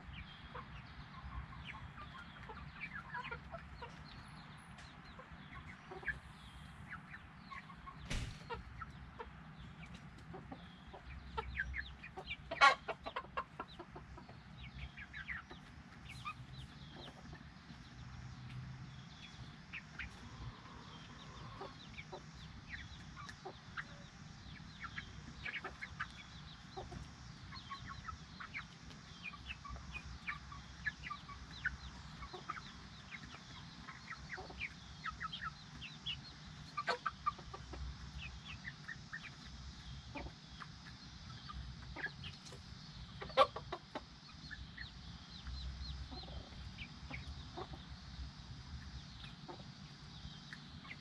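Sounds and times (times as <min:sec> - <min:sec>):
hen clucking: 0:00.0 - 0:17.6, 0:18.4 - 0:51.0
chicks peeping: 0:00.0 - 0:51.0.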